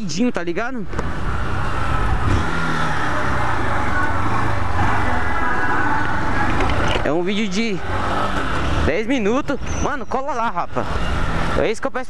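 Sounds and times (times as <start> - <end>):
wind and road noise: 0.0 - 12.0
motorcycle engine running: 1.0 - 11.7.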